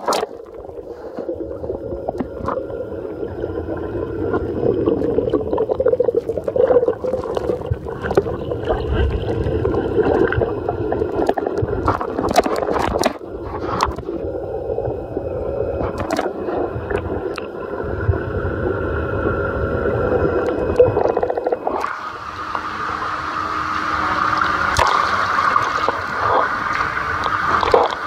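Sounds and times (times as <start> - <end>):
muffled underwater gurgling: 0.0 - 28.0.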